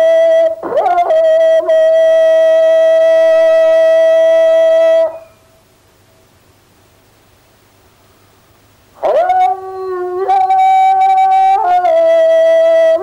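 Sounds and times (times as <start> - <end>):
wind instrument long note: 1.3 - 5.4.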